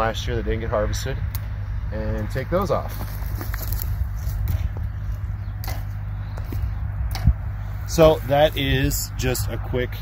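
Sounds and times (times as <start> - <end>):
low steady rumble: 0.0 - 10.0
pruning shears snipping: 5.6 - 7.4.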